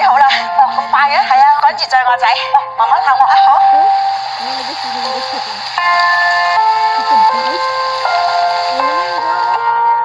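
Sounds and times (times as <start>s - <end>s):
sustained musical notes: 0.0s - 10.0s
heavy rain hissing: 3.4s - 9.6s.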